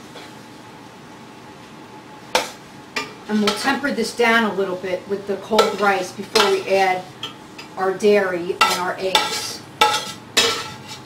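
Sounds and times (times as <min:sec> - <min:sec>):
room hum: 0:00.0 - 0:11.0
metal spoon clinking skillet: 0:05.6 - 0:07.8, 0:08.6 - 0:11.0.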